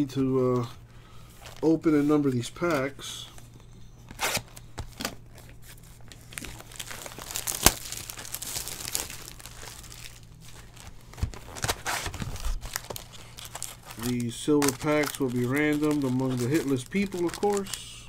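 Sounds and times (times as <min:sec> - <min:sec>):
card packs crinkling and tearing: 0:00.0 - 0:18.0.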